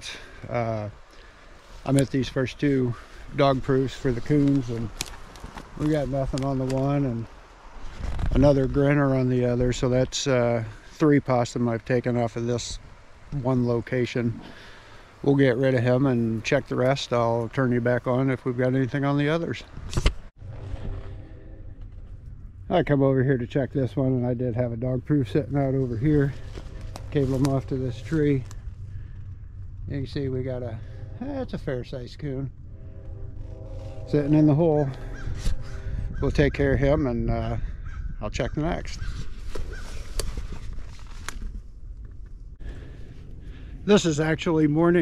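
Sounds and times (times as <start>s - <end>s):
wind rumble on microphone: 1.8s - 10.2s, 15.8s - 45.0s
twigs snapping underfoot: 4.9s - 6.4s, 39.5s - 41.6s
footsteps through dry leaves: 26.2s - 28.7s, 39.0s - 41.3s.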